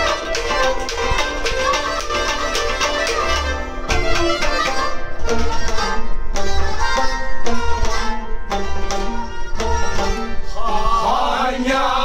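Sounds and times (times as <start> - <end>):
hand percussion beat: 0.0 - 4.9
string instrument melody: 0.0 - 12.0.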